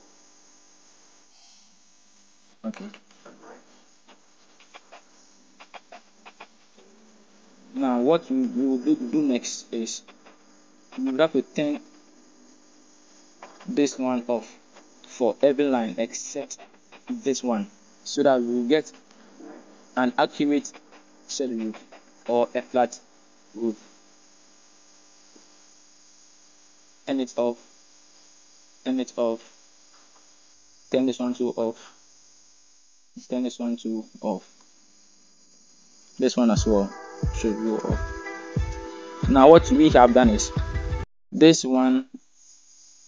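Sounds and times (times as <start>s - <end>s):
electrical hum and hiss: 0.0s - 43.0s.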